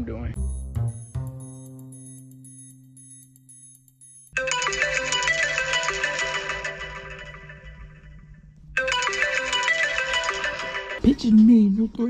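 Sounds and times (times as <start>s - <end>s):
smartphone alarm chime: 0.4s - 6.0s.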